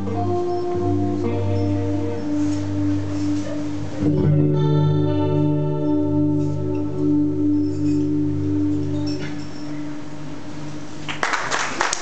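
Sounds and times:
acoustic guitar playing: 0:00.0 - 0:11.1.

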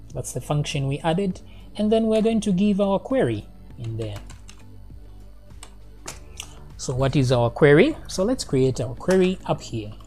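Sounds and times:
computer keyboard typing: 0:03.8 - 0:04.7.

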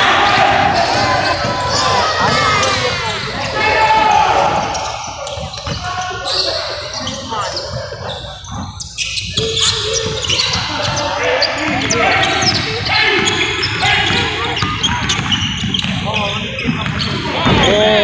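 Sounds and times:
voices calling out: 0:00.0 - 0:18.0
basketball bouncing on wooden floor: 0:11.7 - 0:17.8.

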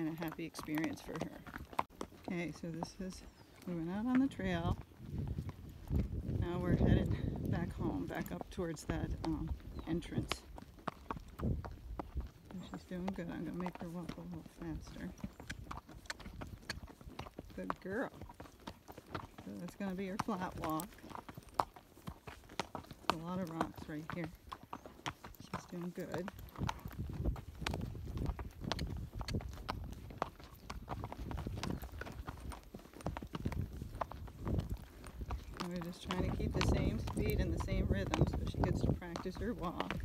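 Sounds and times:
hooves clip-clopping on rocky trail: 0:00.0 - 0:40.0
horse hoofbeats on dirt: 0:00.0 - 0:40.0.

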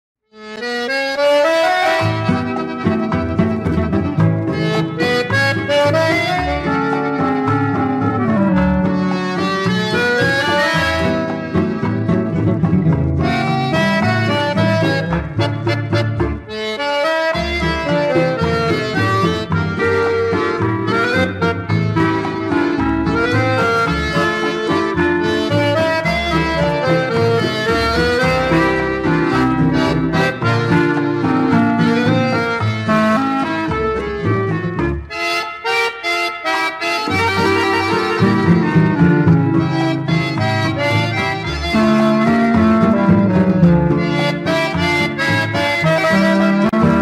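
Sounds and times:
accordion melody: 0:00.3 - 0:47.0
bass and rhythm accompaniment: 0:00.3 - 0:47.0.

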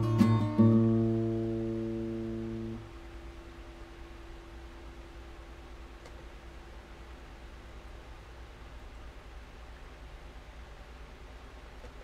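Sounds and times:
strummed guitar chord: 0:00.0 - 0:02.8
faint steady hum: 0:00.0 - 0:12.0.

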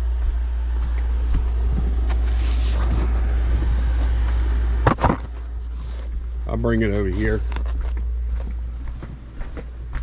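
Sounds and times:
light knocks and shuffles: 0:00.0 - 0:04.6, 0:05.3 - 0:10.0
low rumble: 0:00.0 - 0:10.0
cardboard box rustling and scraping: 0:02.0 - 0:04.2.

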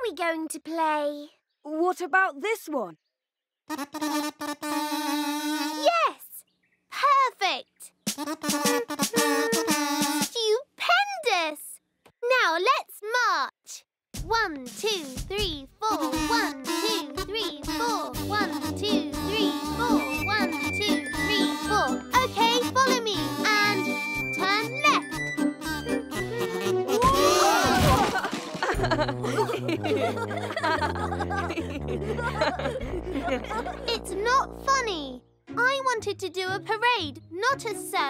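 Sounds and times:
toy kazoos playing: 0:03.7 - 0:05.8, 0:08.1 - 0:10.3, 0:16.0 - 0:17.2, 0:18.4 - 0:22.1
drum beat: 0:08.1 - 0:10.3, 0:14.2 - 0:18.3.

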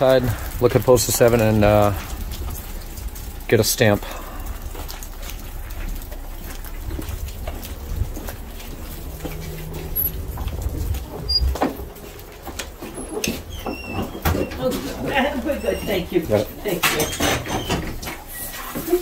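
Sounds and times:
low rumble on microphone: 0:00.0 - 0:15.2
footsteps: 0:00.0 - 0:19.0
faint high squeaks: 0:13.0 - 0:16.2.

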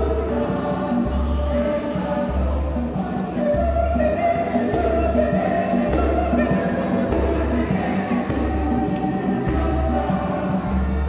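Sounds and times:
choir singing in harmony: 0:00.0 - 0:11.0.

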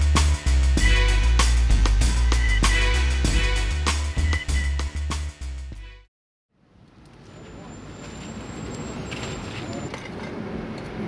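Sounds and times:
traffic rumble: 0:06.6 - 0:11.0.

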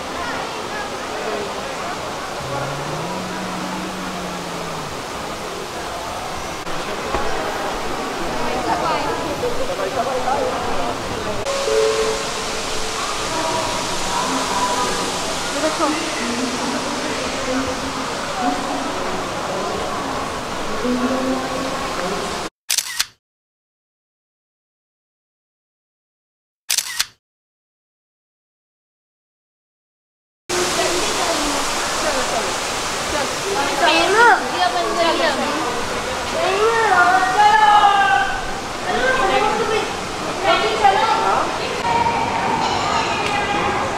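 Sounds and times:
chatter of visitors: 0:00.0 - 0:22.5, 0:30.5 - 0:43.9
rushing water: 0:00.0 - 0:22.5, 0:30.5 - 0:43.9
high voice rising and falling: 0:02.4 - 0:05.4.

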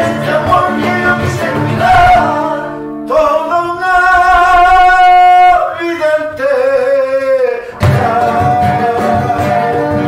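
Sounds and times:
cajon drumming: 0:00.0 - 0:02.4, 0:07.7 - 0:10.0
acoustic guitars: 0:00.0 - 0:10.0
men singing: 0:00.0 - 0:10.0.

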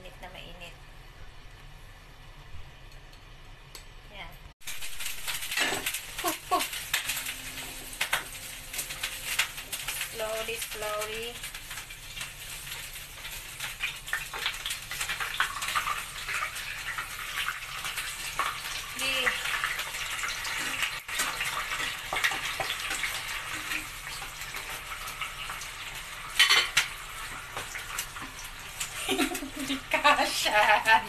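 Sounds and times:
fish sizzling in hot oil: 0:04.6 - 0:31.0.

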